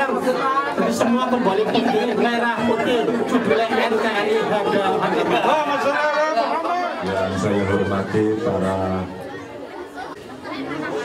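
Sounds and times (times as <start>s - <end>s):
low background chatter: 0.0s - 11.0s.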